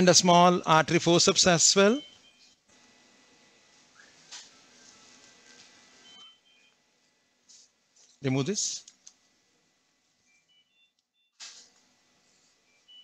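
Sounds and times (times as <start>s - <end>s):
faint beeps: 1.9s - 2.6s, 6.0s - 6.8s, 12.6s - 13.0s.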